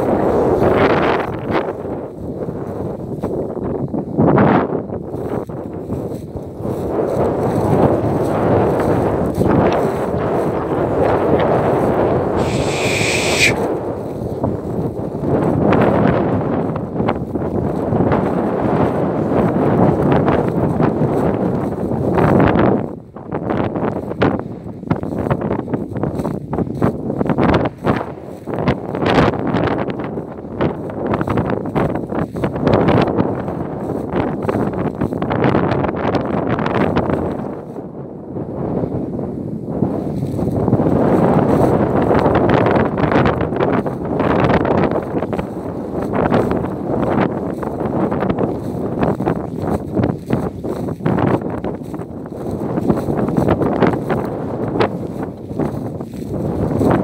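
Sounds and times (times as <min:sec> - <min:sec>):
wind buffeting microphone: 0:00.0 - 0:57.0
brief high-pitched sound: 0:12.4 - 0:13.6
short crackles: 0:12.4 - 0:13.7.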